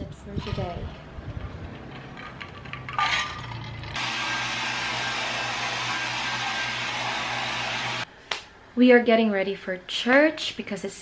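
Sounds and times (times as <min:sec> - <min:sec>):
hair dryer running: 0:04.0 - 0:08.1.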